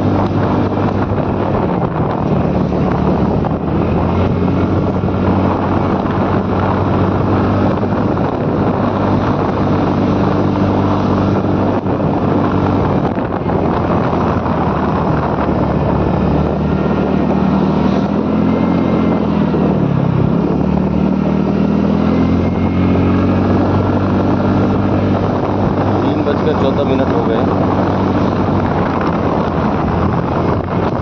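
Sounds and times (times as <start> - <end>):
motor scooter engine running: 0.0 - 31.0
wind noise on microphone: 0.0 - 31.0.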